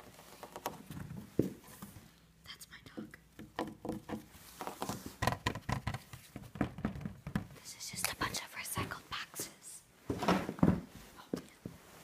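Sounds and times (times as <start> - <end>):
person whispering: 2.4 - 3.2, 7.6 - 9.9, 11.1 - 11.6.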